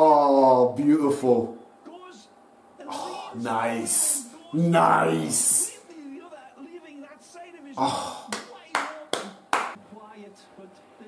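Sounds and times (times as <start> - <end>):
hand claps: 8.3 - 9.8.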